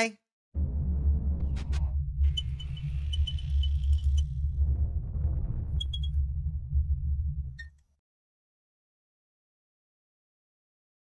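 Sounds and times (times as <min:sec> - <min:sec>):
deep steady rumble: 0:00.6 - 0:07.6.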